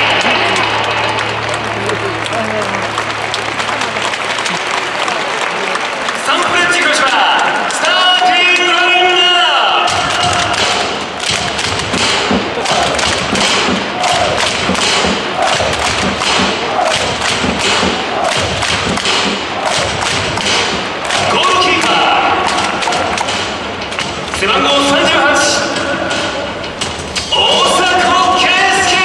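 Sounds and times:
crowd beating drums: 0.0s - 29.0s
crowd clapping: 0.0s - 29.0s
announcer over public address: 6.2s - 10.6s, 21.2s - 22.6s, 24.4s - 26.2s, 27.4s - 29.0s.

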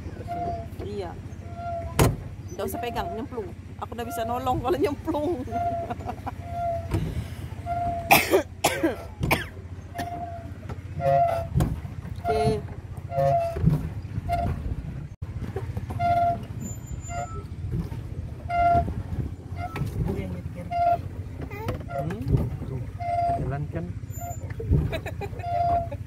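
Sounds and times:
pedal boat squeaks: 0.0s - 26.0s
steady low rumble: 0.0s - 26.0s.

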